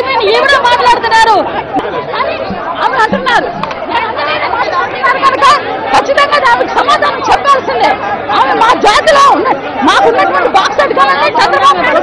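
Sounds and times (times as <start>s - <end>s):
women arguing loudly: 0.0s - 12.0s.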